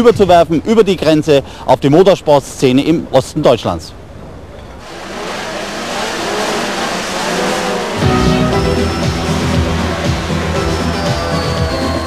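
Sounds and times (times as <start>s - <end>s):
two-stroke engines revving: 4.8s - 12.0s.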